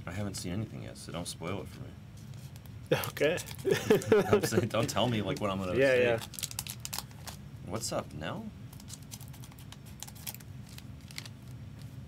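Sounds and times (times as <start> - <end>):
steady low hum: 0.0 - 12.0
foil wrapper crackling: 2.4 - 3.8, 4.7 - 7.4, 8.7 - 12.0.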